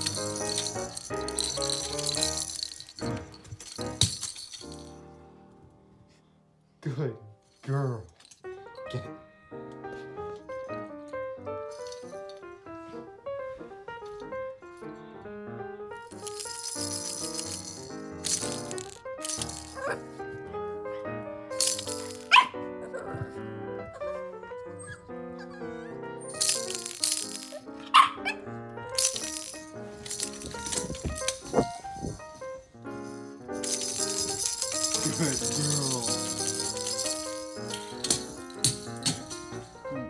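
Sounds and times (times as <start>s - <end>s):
baby's rattle shaken: 0.0s - 5.0s, 11.7s - 12.4s, 16.1s - 20.0s, 21.5s - 22.4s, 26.3s - 27.6s, 29.0s - 40.0s
instrumental background music: 0.0s - 40.0s.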